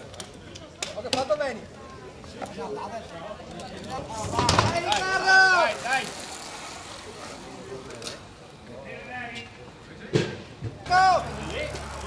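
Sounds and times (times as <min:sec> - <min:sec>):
faint voices: 0:00.0 - 0:12.0
bicycle tyres hissing on asphalt: 0:04.0 - 0:09.8, 0:11.0 - 0:12.0.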